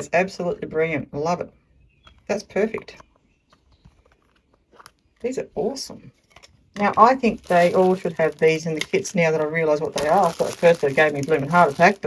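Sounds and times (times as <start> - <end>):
small plastic rustles: 2.0 - 5.3, 6.1 - 12.0.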